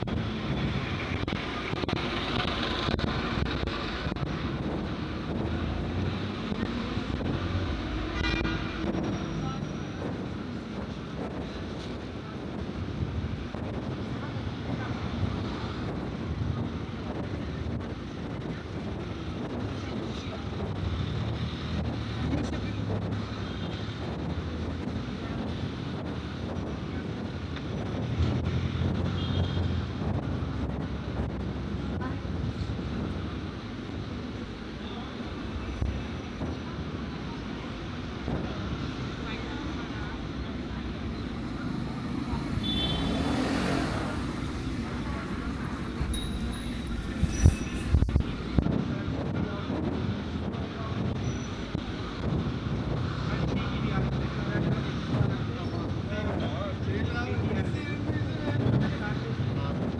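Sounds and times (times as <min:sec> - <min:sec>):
car traffic passing: 0:00.0 - 0:59.9
passers-by talking: 0:00.0 - 0:59.9
wind buffeting microphone: 0:00.0 - 0:59.9
short car horn toot: 0:42.6 - 0:43.1.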